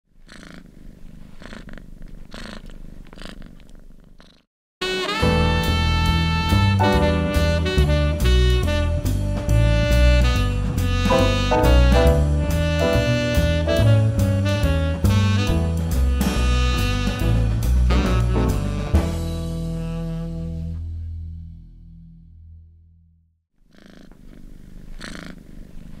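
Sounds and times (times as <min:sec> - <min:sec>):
cat purring: 0:00.1 - 0:04.5, 0:23.6 - 0:26.0.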